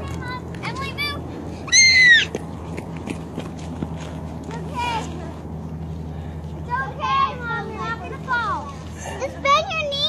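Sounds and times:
child's high-pitched squeal: 0:01.7 - 0:02.3.

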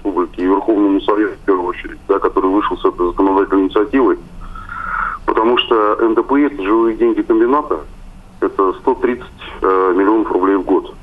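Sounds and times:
man speaking over telephone: 0:00.0 - 0:04.3, 0:05.1 - 0:11.0.

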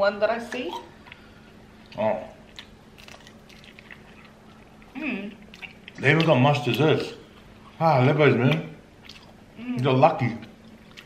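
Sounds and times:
faint chewing of crispy pastry: 0:01.0 - 0:11.0.

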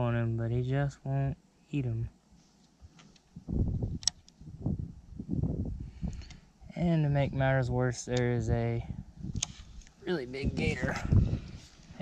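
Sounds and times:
muffled low rumbling: 0:03.3 - 0:06.3, 0:07.0 - 0:12.0
sharp click: 0:04.0 - 0:04.4, 0:09.4 - 0:09.9.

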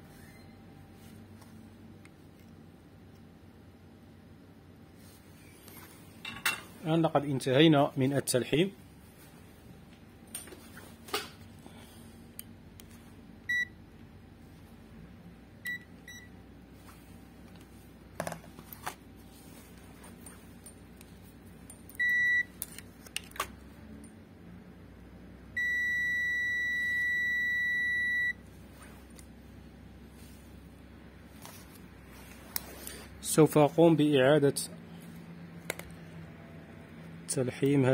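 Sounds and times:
multimeter continuity beeps: 0:13.4 - 0:13.8, 0:15.6 - 0:16.3, 0:21.9 - 0:22.5, 0:25.6 - 0:28.4.

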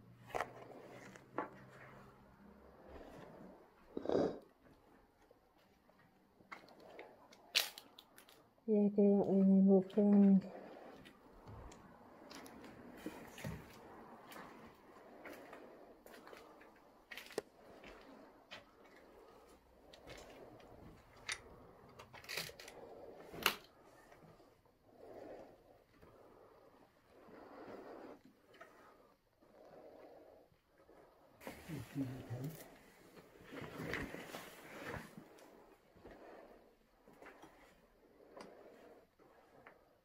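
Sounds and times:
soft rustling: 0:30.9 - 0:36.6.

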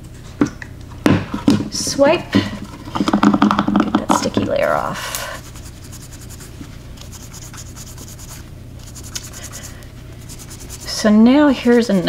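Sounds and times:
wipe rubbing over nails: 0:05.4 - 0:12.0.

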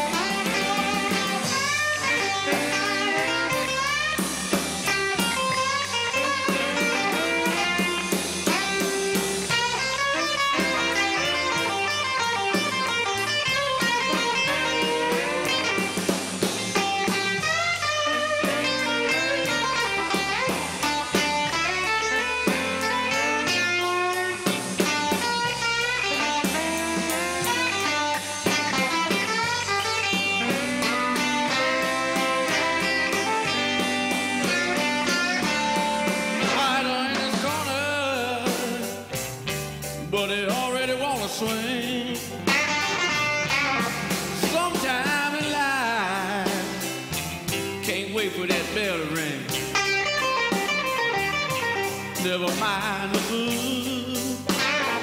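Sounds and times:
bass and drums: 0:00.0 - 0:55.0
electric guitar lead with bends: 0:00.0 - 0:55.0.

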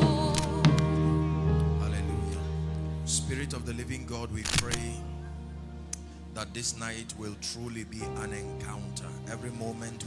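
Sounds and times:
soft keyboard chords: 0:00.0 - 0:10.0.

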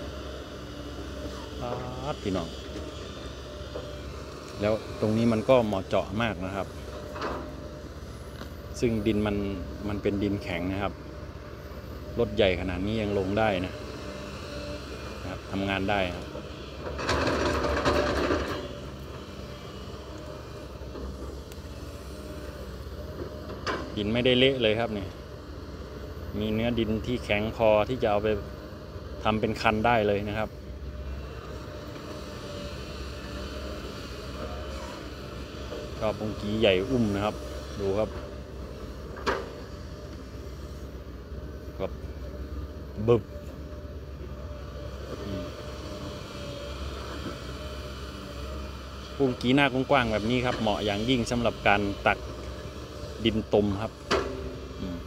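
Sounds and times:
excavator diesel engine running: 0:00.0 - 0:55.0.

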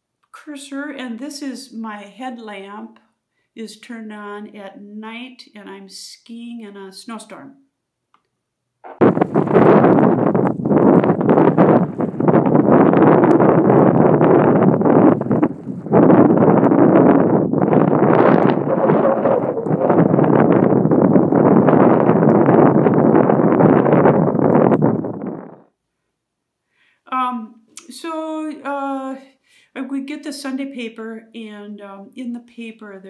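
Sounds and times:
wind buffeting microphone: 0:08.8 - 0:25.7.

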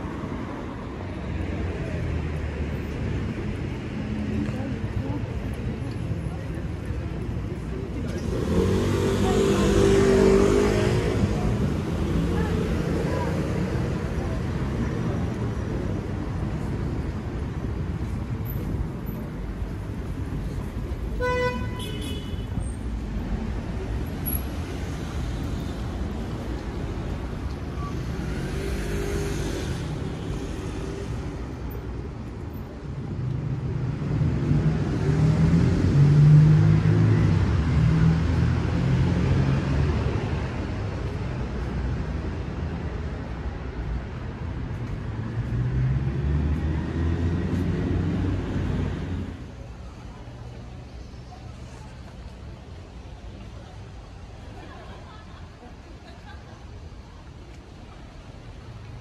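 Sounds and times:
street traffic: 0:00.0 - 0:59.0
vehicles passing: 0:00.0 - 0:59.0.

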